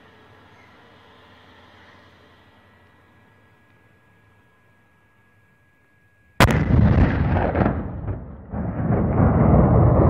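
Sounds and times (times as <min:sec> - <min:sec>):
gas exploder detonation: 0:06.4 - 0:10.0
rolling rumble: 0:06.4 - 0:10.0.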